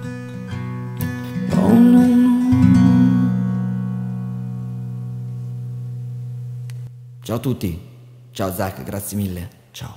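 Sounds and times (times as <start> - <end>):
acoustic guitar chord ringing: 0.0 - 7.3.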